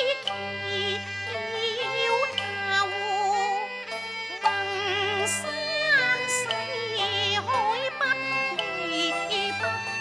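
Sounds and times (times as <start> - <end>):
woman singing opera with vibrato: 0.0 - 3.7, 4.4 - 10.0
instrumental accompaniment: 0.0 - 10.0.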